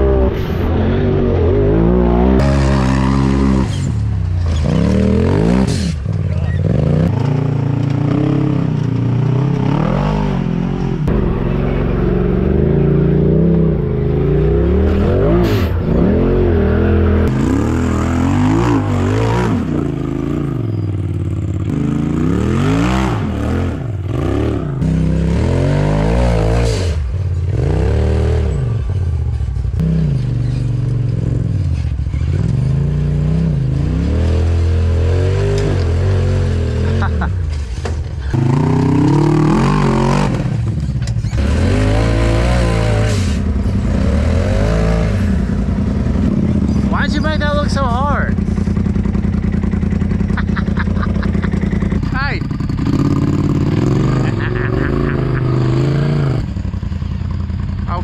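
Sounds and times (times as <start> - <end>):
off-road engine revving: 0.0 - 58.0.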